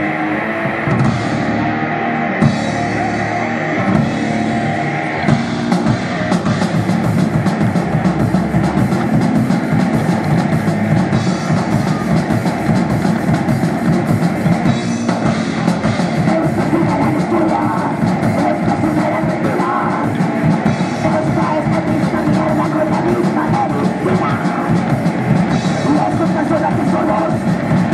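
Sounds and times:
bass guitar: 0.0s - 27.9s
electric guitars: 0.0s - 27.9s
drum kit hits: 0.8s - 1.7s, 2.4s - 27.9s.

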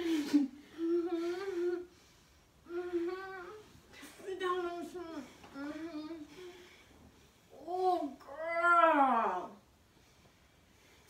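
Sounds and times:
person moaning: 0.0s - 1.9s, 2.7s - 3.6s.

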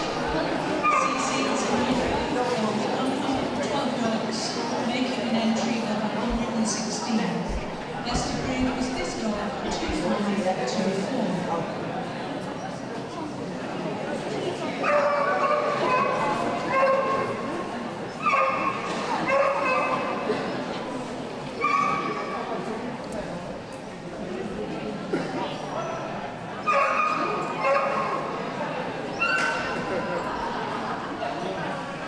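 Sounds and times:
crowd murmur in a hall: 0.0s - 32.0s.

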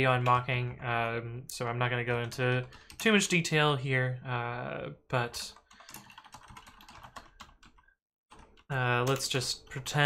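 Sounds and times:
computer keyboard typing: 2.1s - 3.3s, 5.4s - 10.0s.

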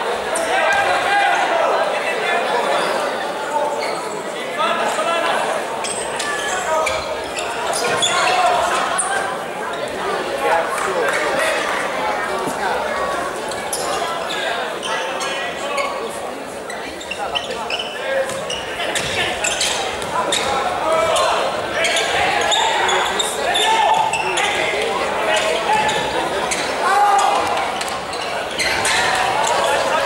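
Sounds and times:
voices calling out: 4.8s - 30.0s.

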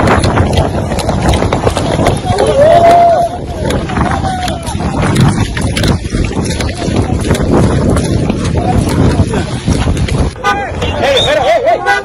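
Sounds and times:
wind buffeting phone microphone: 0.0s - 12.0s.

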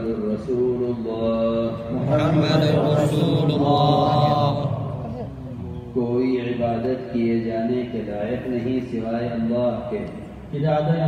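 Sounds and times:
crowd of men reciting in unison: 0.0s - 11.0s.

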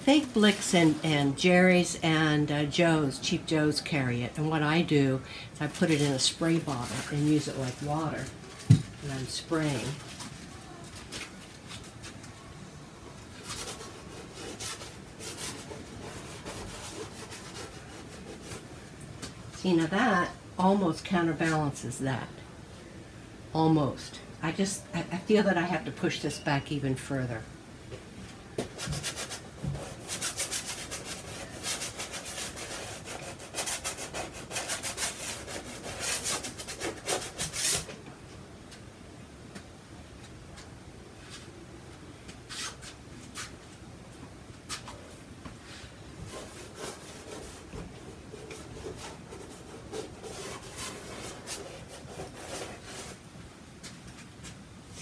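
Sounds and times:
paintbrush scrubbing on canvas: 13.4s - 18.7s, 28.8s - 37.9s, 46.2s - 53.2s.

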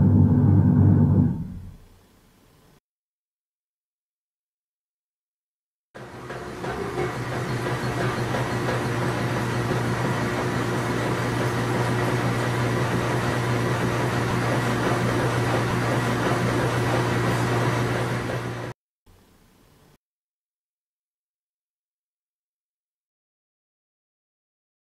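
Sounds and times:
washing machine running: 0.0s - 1.8s, 6.0s - 18.8s.

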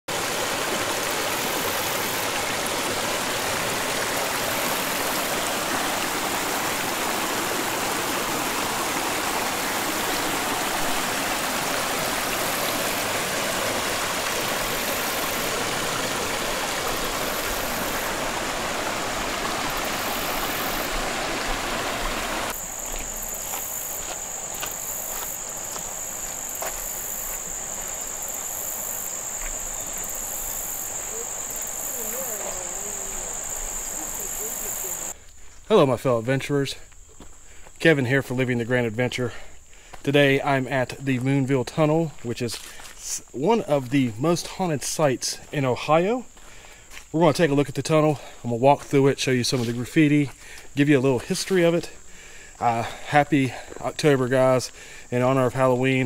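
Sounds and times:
creek water rushing over rocks: 0.0s - 35.2s, 37.6s - 56.0s
high-pitched insect buzz: 14.7s - 15.5s, 16.9s - 18.2s, 19.7s - 21.0s, 22.5s - 35.1s.

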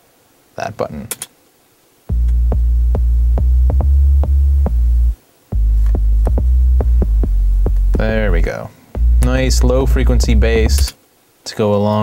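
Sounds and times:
low synthesizer bass: 2.1s - 10.9s.

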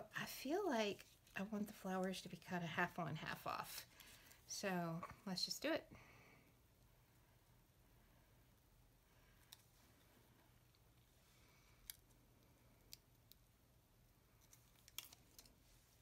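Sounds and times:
faint room hum: 0.0s - 16.0s.

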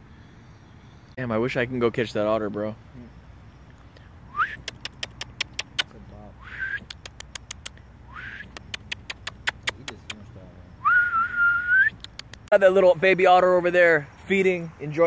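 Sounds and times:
person whistling rising notes: 4.3s - 4.7s, 6.4s - 6.9s, 8.1s - 8.5s, 10.8s - 12.1s
sharp tongue clicks: 4.4s - 10.3s, 11.7s - 12.5s.

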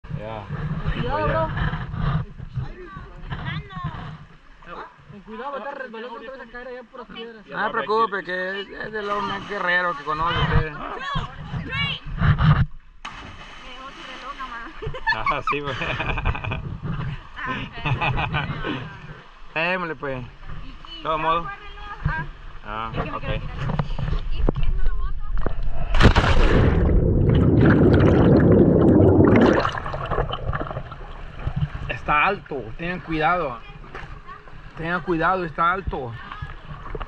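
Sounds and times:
muffled underwater bubbles: 25.4s - 32.0s
person splashing into water: 25.8s - 31.8s
water wash: 25.9s - 33.5s.

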